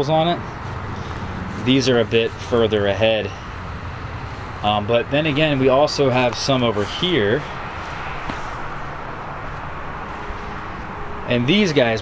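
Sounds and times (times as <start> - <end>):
low outdoor rush: 0.0 - 12.0.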